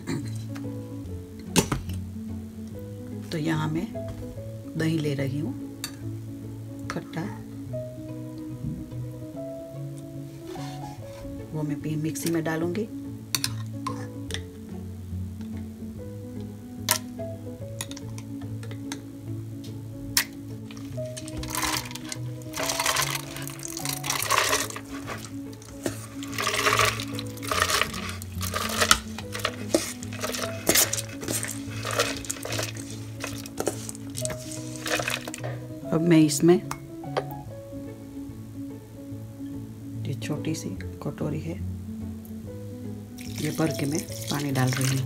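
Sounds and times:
background music: 0:00.0 - 0:45.0
wet grains sliding and rattling: 0:20.6 - 0:35.5, 0:43.2 - 0:45.0.

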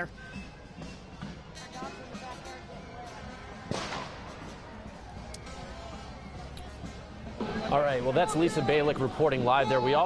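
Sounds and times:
street crowd noise: 0:00.0 - 0:10.0
sharp crack: 0:03.7 - 0:04.6.

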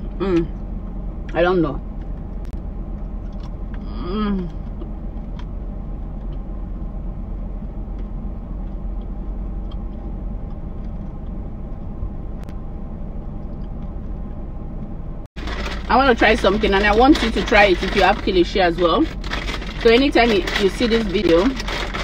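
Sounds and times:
low rumble in car cabin: 0:00.0 - 0:22.0.

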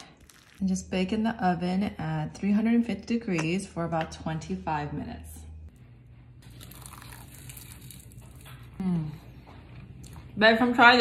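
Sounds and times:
crunching and chewing food: 0:00.1 - 0:00.6, 0:06.4 - 0:10.4.

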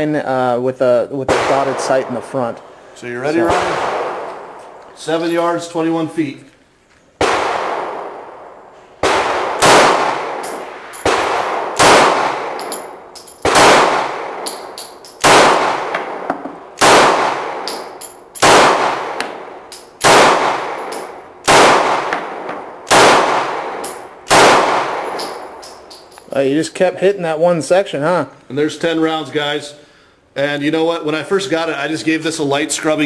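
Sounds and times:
pistol shots with echo: 0:01.3 - 0:02.8, 0:03.4 - 0:04.8, 0:07.2 - 0:26.2.

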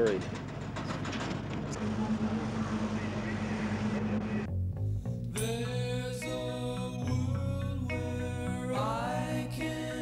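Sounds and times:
engine droning: 0:01.4 - 0:04.5.

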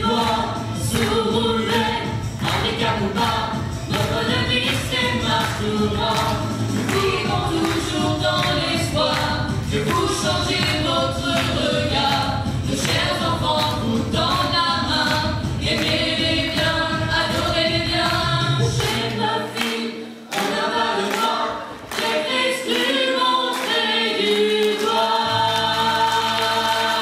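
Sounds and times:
children's choir singing: 0:00.0 - 0:27.0.

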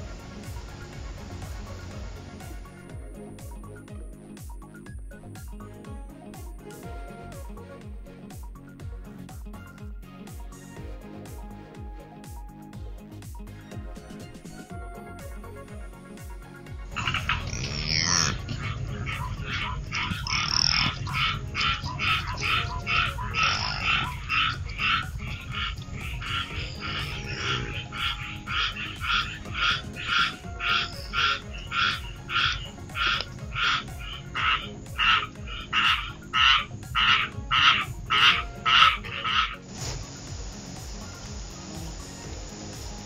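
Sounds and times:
animal making short calls: 0:16.9 - 0:39.6.

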